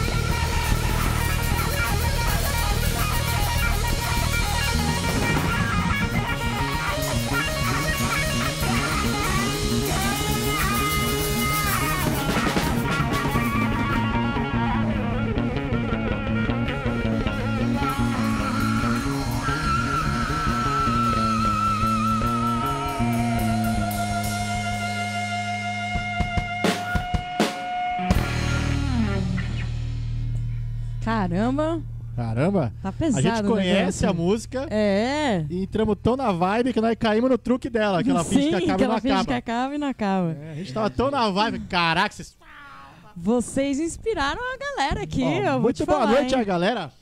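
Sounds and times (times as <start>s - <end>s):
psychedelic rock band playing: 0.0s - 37.0s
electric guitar lead: 0.0s - 37.1s, 38.0s - 39.6s.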